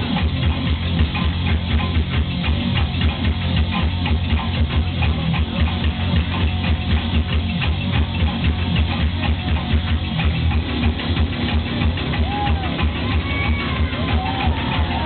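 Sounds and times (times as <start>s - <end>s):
pulsing low bass line: 0.0s - 15.0s.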